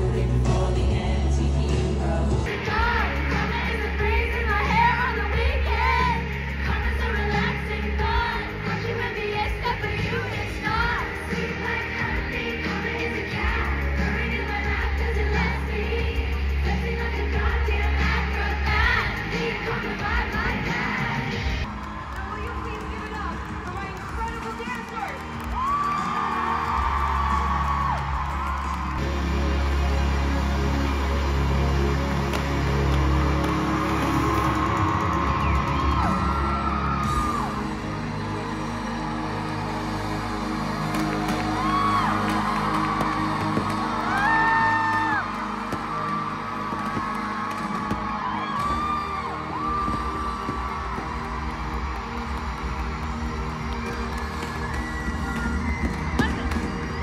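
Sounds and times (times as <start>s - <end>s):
person singing: 0.0s - 21.3s
amplified pop music: 0.0s - 57.0s
audience whooping: 21.7s - 29.1s, 32.7s - 57.0s.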